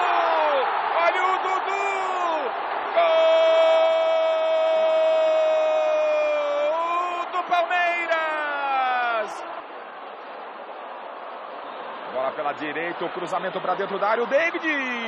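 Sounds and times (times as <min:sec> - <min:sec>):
narrator shouting goal: 0:00.0 - 0:09.4
stadium crowd noise: 0:00.0 - 0:15.0.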